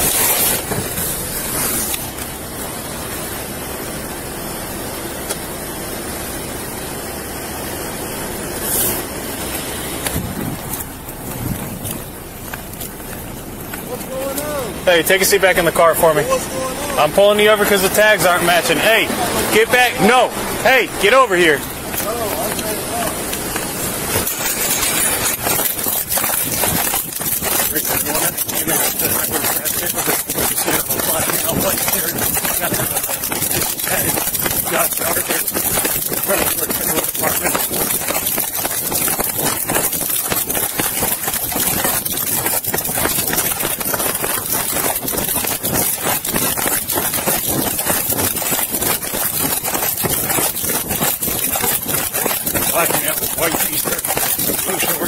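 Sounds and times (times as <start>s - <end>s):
camera rubbing and jolting: 0.0s - 2.7s, 8.6s - 55.0s.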